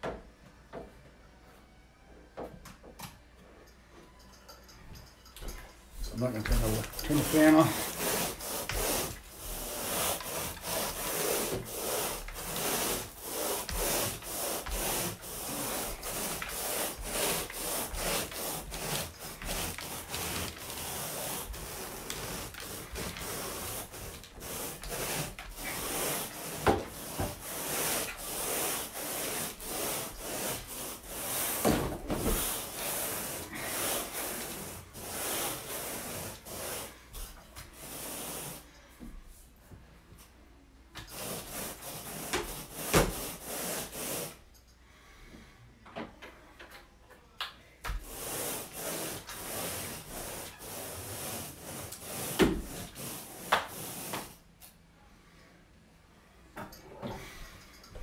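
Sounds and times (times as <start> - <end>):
carpet rake scraping carpet: 6.1 - 37.0, 48.0 - 54.3.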